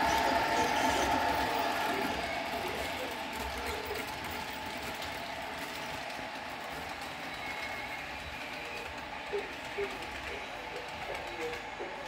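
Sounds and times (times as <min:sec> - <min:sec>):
model train motors whirring: 0:00.0 - 0:12.0
wheels on rails: 0:00.0 - 0:12.0.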